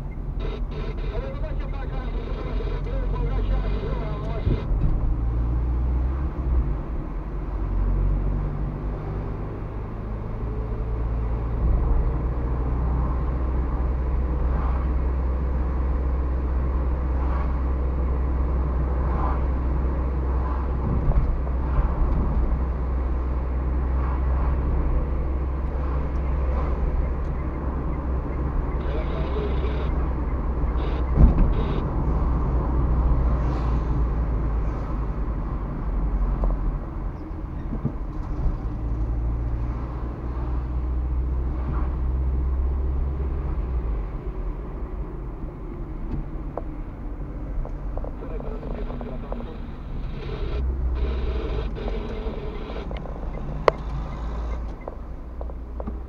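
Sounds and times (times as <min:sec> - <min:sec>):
car engine and road noise: 0:00.0 - 0:56.0
sharp thump: 0:31.1 - 0:31.5.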